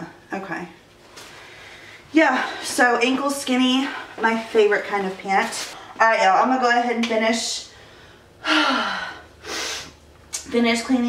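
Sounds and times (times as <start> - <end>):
woman breathing: 1.2 - 2.8, 7.7 - 10.0
woman sighing heavily: 8.4 - 9.3.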